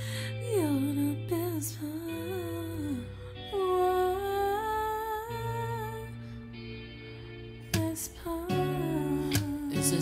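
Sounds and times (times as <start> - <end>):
backing track of sustained chords: 0.0 - 10.0
man singing wordless melody: 9.7 - 10.0.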